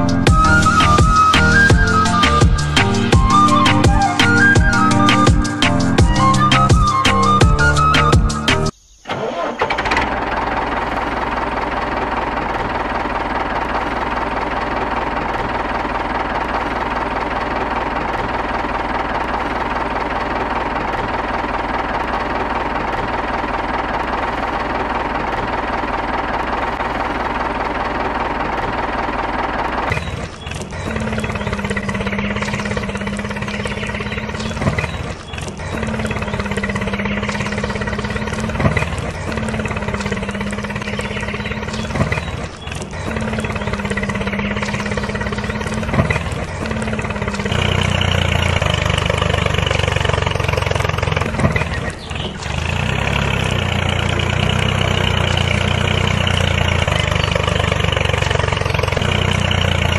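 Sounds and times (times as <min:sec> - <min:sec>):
tractor engine running: 0:00.0 - 0:59.9.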